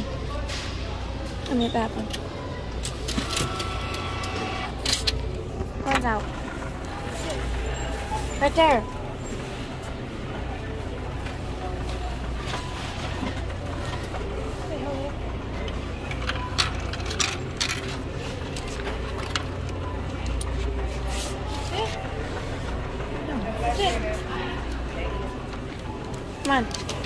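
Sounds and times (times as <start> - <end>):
faint distant voices: 0.0 - 27.0.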